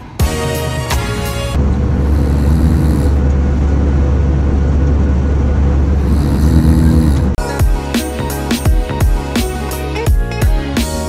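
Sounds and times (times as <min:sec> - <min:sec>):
background music: 0:00.0 - 0:01.6, 0:07.4 - 0:11.0
jet engine and cabin rumble: 0:01.6 - 0:07.4.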